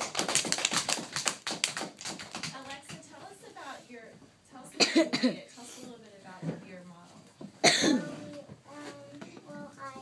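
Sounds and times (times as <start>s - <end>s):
loud close cough: 4.8s - 5.4s, 7.6s - 8.1s.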